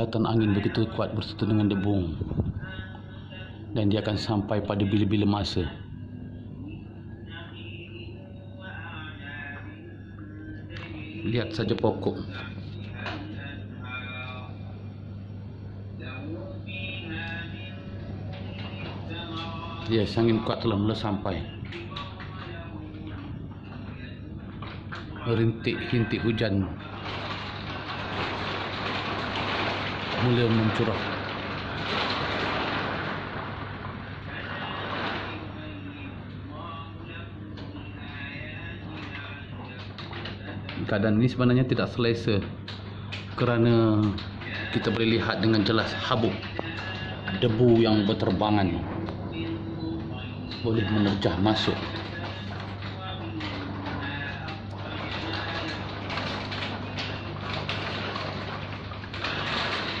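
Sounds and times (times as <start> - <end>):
steady low hum: 0.0 - 60.0
rain falling: 26.9 - 35.5, 51.6 - 60.0
wind and rain rushing: 27.0 - 35.4.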